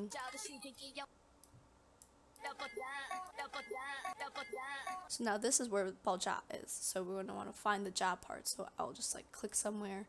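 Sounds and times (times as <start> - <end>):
person speaking: 0.0 - 1.1.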